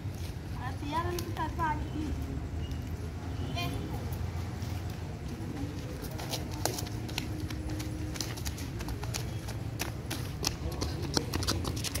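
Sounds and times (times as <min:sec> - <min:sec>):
running footsteps on pavement: 0:03.7 - 0:12.0.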